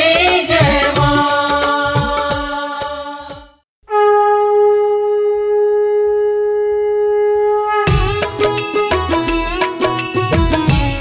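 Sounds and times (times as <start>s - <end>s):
wind instrument holding a note: 3.9s - 8.8s.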